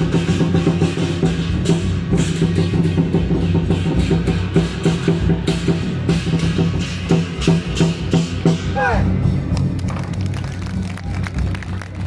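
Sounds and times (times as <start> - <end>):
cymbals clashing: 0.0 - 9.6
big drum beating fast: 0.0 - 10.0.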